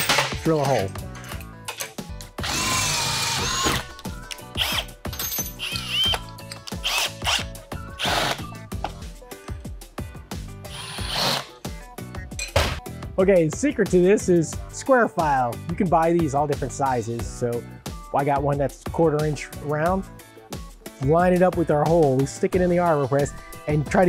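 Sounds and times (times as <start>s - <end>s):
background music: 0.0s - 24.0s
cordless drill whining: 2.4s - 5.0s, 5.6s - 8.6s, 10.7s - 11.6s.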